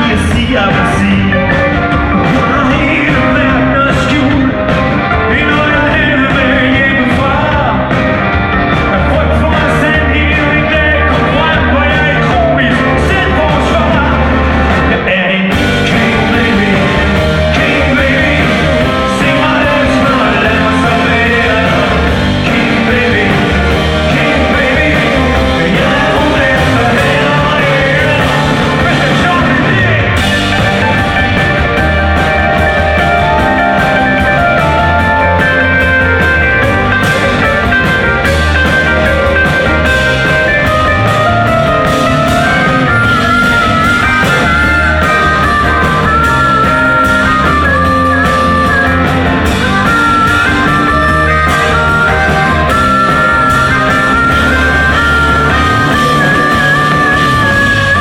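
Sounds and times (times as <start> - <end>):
live rock band playing: 0.0 - 58.0
person singing: 0.0 - 58.0.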